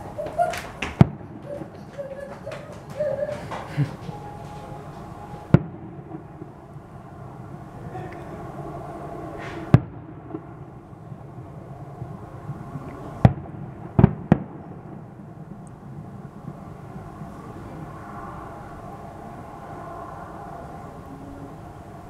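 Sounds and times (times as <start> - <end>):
firework shells bursting: 0.0 - 6.6
steady background hum: 0.0 - 22.0.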